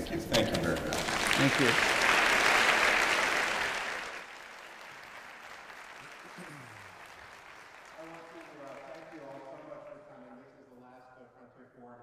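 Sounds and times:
audience applauding: 0.9 - 10.5.

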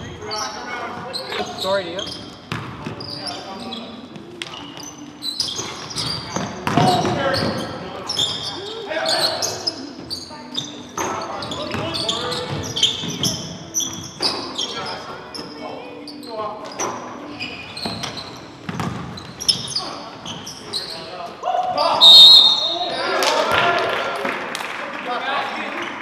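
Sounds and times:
sneaker squeaks: 0.0 - 23.2
basketball bouncing on hardwood: 18.7 - 19.1
players calling out: 21.4 - 23.6.

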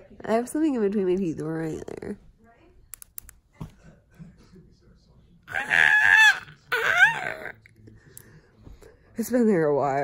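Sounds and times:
woman squealing: 5.5 - 7.5.

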